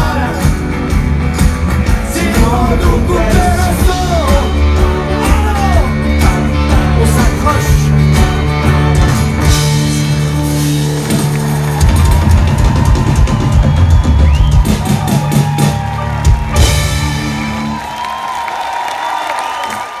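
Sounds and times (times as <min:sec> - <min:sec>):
drum fills: 0:00.0 - 0:18.5.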